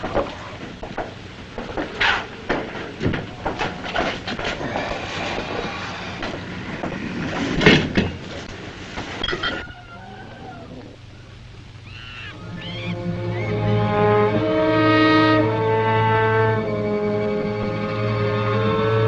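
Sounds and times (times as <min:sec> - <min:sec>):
noisy clattering and knocks: 0:00.0 - 0:09.8
chirping calls: 0:09.3 - 0:13.8
orchestral strings: 0:12.3 - 0:19.0.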